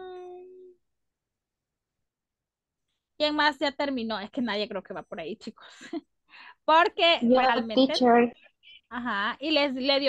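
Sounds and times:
person humming: 0:00.0 - 0:00.8.

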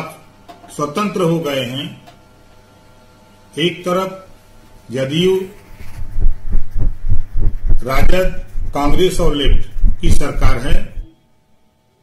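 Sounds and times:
low thumps on microphone: 0:05.8 - 0:11.1.

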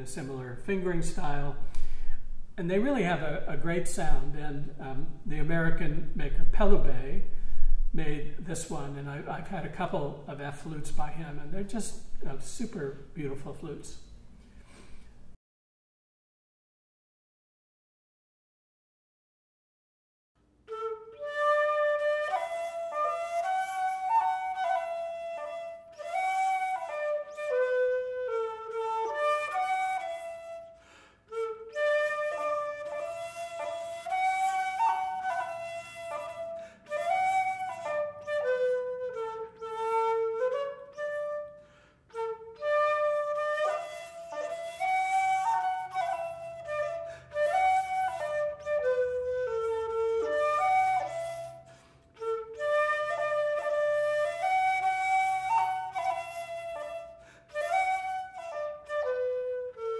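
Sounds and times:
wooden flute solo melody: 0:20.6 - 0:59.9.

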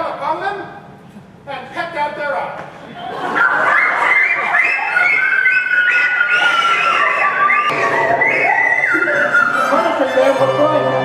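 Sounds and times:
women shrieking and wailing: 0:03.3 - 0:11.0.

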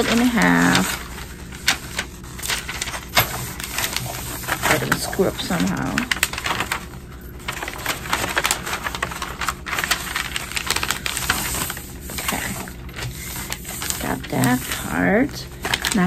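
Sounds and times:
wrapping paper crinkling: 0:00.0 - 0:16.0.

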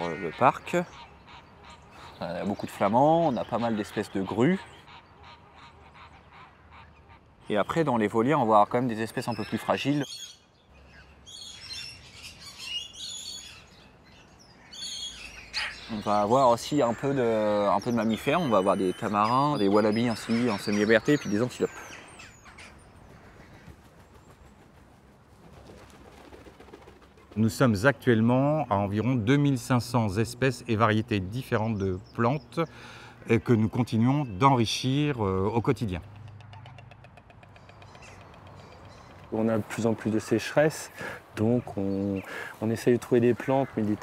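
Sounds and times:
waterbirds calling: 0:00.0 - 0:25.2, 0:26.2 - 0:44.0.

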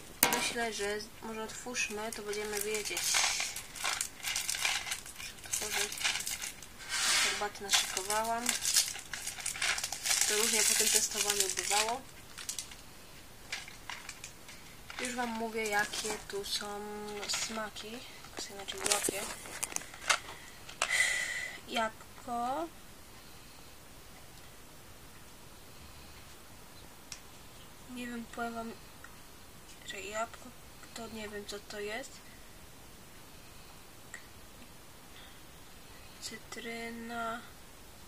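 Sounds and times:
cardboard packaging crinkling: 0:01.7 - 0:21.0.

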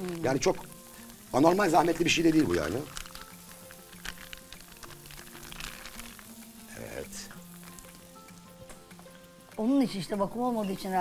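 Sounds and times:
pasta sizzling in a pan: 0:00.0 - 0:11.0
soft background music: 0:00.0 - 0:11.0.

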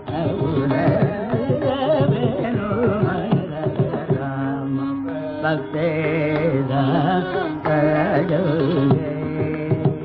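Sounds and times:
man singing classical vocal: 0:00.0 - 0:10.0.

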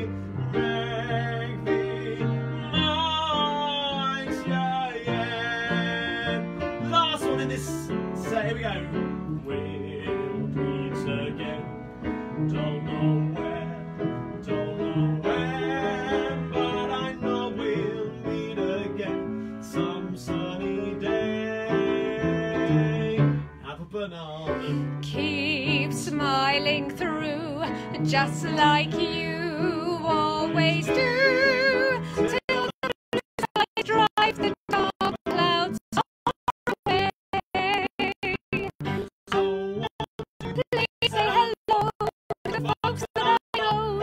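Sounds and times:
man singing: 0:00.0 - 0:36.1, 0:36.8 - 0:44.0
upright piano sing-along style: 0:00.0 - 0:44.0.

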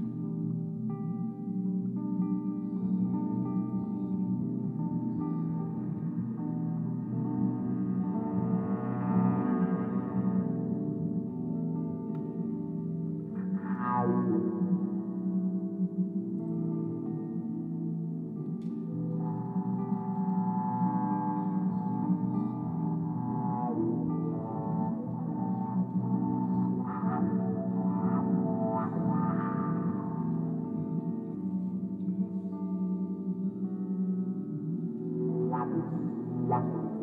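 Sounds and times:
sustained drone tones: 0:02.4 - 0:37.0.

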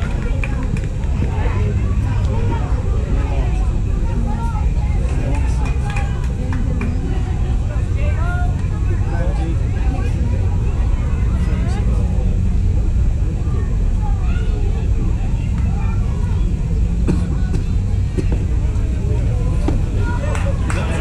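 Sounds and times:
voices calling out: 0:00.0 - 0:21.0.

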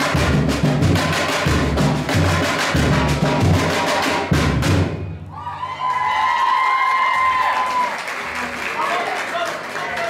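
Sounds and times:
samba drumming: 0:00.0 - 0:05.2
audience applauding and cheering: 0:05.3 - 0:10.0
long shouted cheer: 0:05.3 - 0:10.0.

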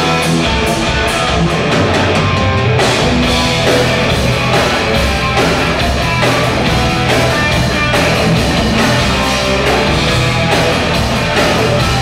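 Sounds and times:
drums: 0:00.0 - 0:12.0
electric guitar: 0:00.0 - 0:12.0
rock band playing live: 0:00.0 - 0:12.0.

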